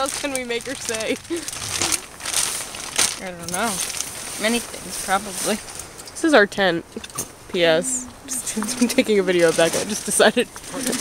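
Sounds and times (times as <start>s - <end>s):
plastic bag crinkling: 0.0s - 5.8s.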